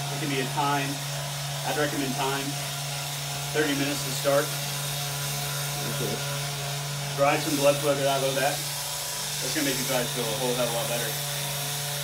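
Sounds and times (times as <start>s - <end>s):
electric massager motor buzz: 0.0s - 12.0s.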